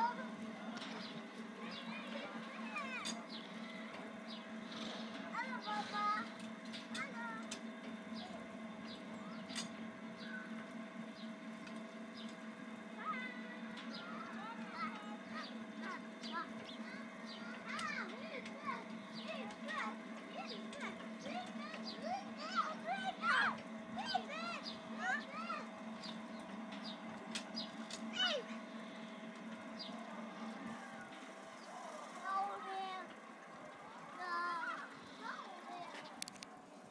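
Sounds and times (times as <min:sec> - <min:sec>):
carousel humming: 0:00.0 - 0:36.9.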